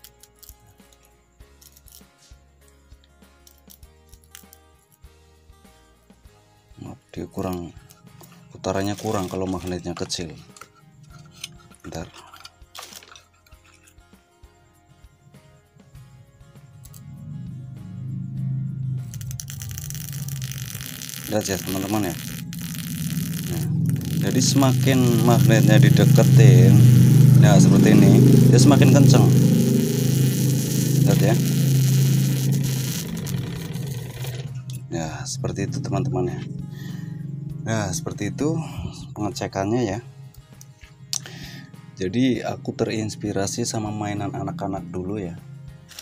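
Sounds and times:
wire scraping and clicking on commutator: 0.0s - 2.2s, 3.0s - 4.6s, 7.4s - 14.0s, 16.8s - 17.1s, 18.9s - 34.9s
armature spinning low buzz: 7.4s - 11.9s, 16.8s - 39.0s
motor low hum: 16.7s - 39.0s
rasping hiss: 17.7s - 34.6s.

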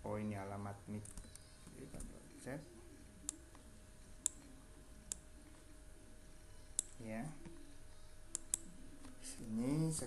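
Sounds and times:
computer mouse button clicks: 8.3s - 8.7s.

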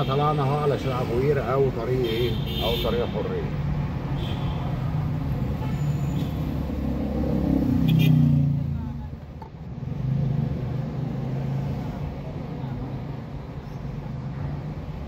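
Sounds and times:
car engine and road noise: 0.0s - 15.0s.

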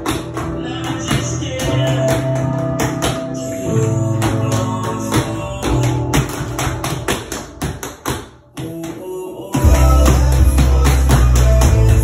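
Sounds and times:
tap shoes on wooden floor: 0.0s - 3.3s, 4.1s - 12.0s
song with steady beat: 0.0s - 7.6s, 8.4s - 12.0s.

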